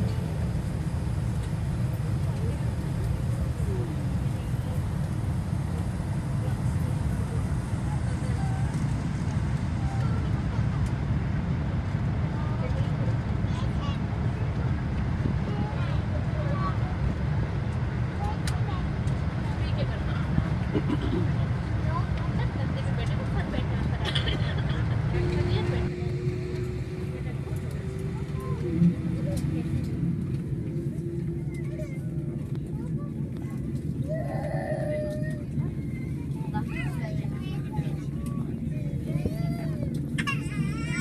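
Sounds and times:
airliner cabin rumble and hiss: 0:00.0 - 0:41.0
faint indistinct voices: 0:00.0 - 0:41.0
low hum: 0:22.9 - 0:40.2.

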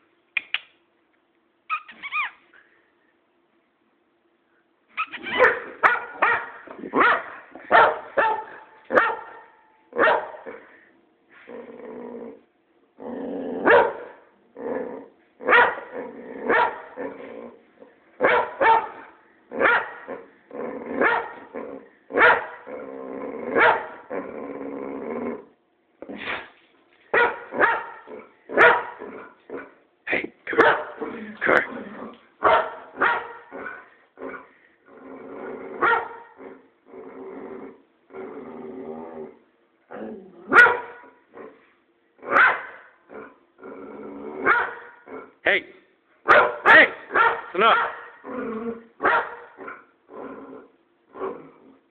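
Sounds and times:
dog barking: 0:05.3 - 0:10.4, 0:13.6 - 0:14.2, 0:15.4 - 0:15.9, 0:16.5 - 0:16.9, 0:18.2 - 0:20.1, 0:21.0 - 0:21.4, 0:22.2 - 0:22.6, 0:23.6 - 0:24.0, 0:27.1 - 0:29.0, 0:30.5 - 0:31.0, 0:32.4 - 0:33.8, 0:35.8 - 0:36.3, 0:40.5 - 0:41.2, 0:42.3 - 0:42.9, 0:44.4 - 0:45.0, 0:46.2 - 0:48.2, 0:49.0 - 0:49.8.

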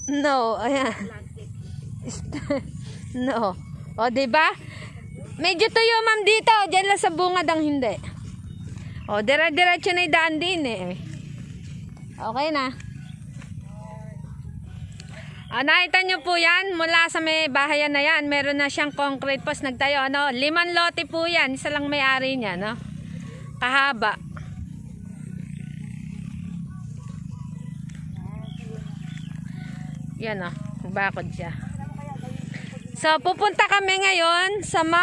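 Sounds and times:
faint voices: 0:00.0 - 0:35.0.

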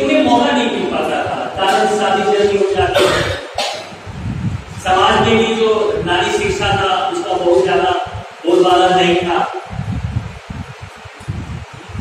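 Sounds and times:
man coughing into microphone: 0:02.8 - 0:04.0.

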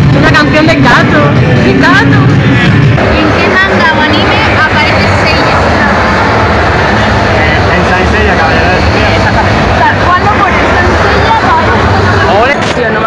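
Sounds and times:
low rumble: 0:00.0 - 0:12.7
people talking at once: 0:00.0 - 0:13.0.

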